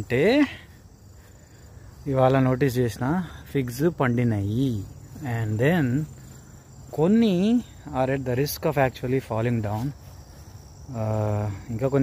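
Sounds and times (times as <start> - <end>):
crickets trilling: 0.0 - 12.0.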